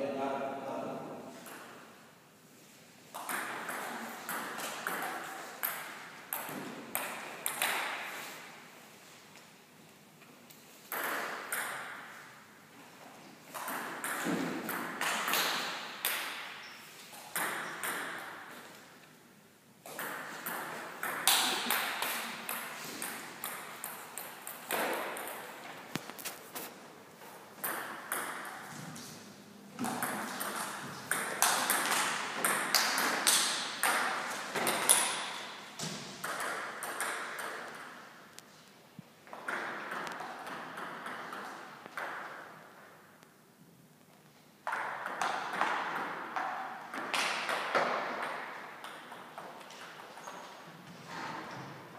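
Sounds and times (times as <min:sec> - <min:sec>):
table tennis ball hit by paddles: 0:03.1 - 0:08.3, 0:10.9 - 0:12.2, 0:13.5 - 0:16.6, 0:17.2 - 0:18.6, 0:19.8 - 0:26.1, 0:27.6 - 0:29.0, 0:29.8 - 0:38.1, 0:39.3 - 0:42.6, 0:44.6 - 0:50.5
ball bouncing on table: 0:17.4 - 0:18.3.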